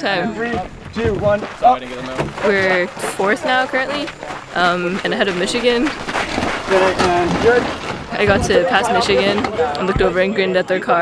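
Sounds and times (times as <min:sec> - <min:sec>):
people talking indistinctly: 0:00.0 - 0:11.0
rushing outdoor background noise: 0:00.0 - 0:11.0.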